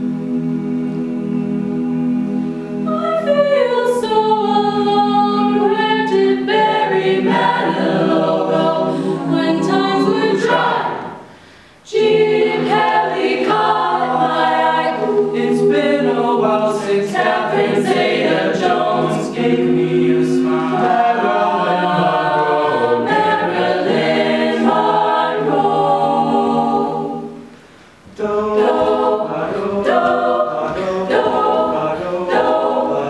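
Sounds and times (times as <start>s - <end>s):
women singing a cappella harmony: 0.0s - 27.5s, 28.1s - 33.0s.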